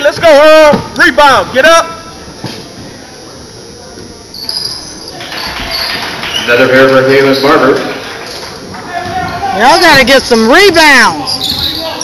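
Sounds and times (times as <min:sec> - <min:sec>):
sneakers squeaking on court: 0:04.3 - 0:06.6, 0:11.2 - 0:12.0.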